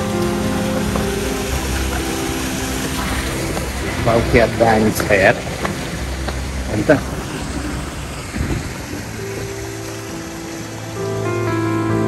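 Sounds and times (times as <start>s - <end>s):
background music: 0.0s - 12.0s
water rushing down stone wall: 0.0s - 12.0s.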